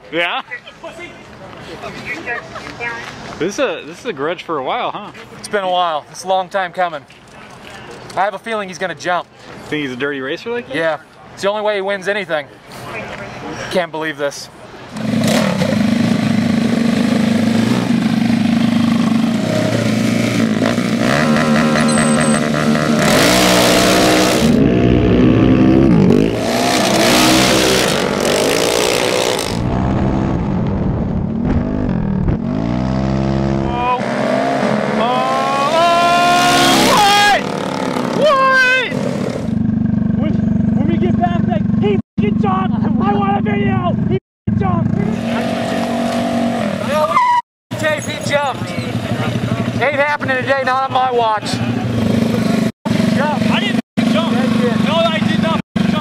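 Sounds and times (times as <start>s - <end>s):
small motorbike engines revving: 14.9s - 29.7s, 32.3s - 40.9s, 44.6s - 50.6s, 51.4s - 56.0s.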